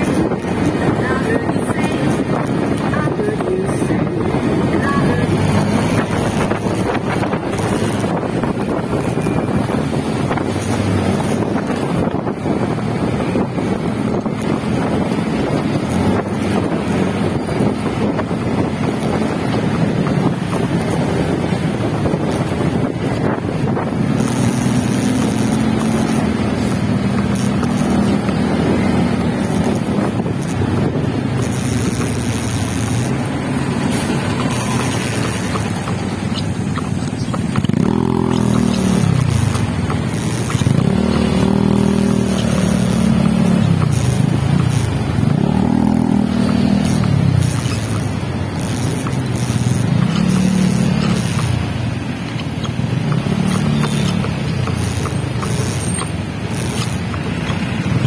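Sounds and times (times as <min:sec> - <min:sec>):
motorcycle engine: 0:00.0 - 0:58.0
wind noise on microphone: 0:00.0 - 0:58.0.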